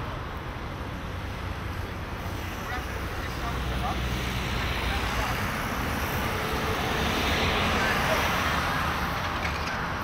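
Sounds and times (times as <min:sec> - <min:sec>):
road traffic passing: 0:00.0 - 0:10.0
vehicle passing close by: 0:02.7 - 0:10.0.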